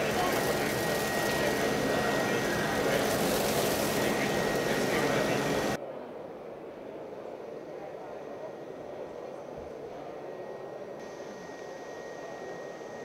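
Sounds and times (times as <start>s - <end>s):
voices: 0.0s - 5.8s.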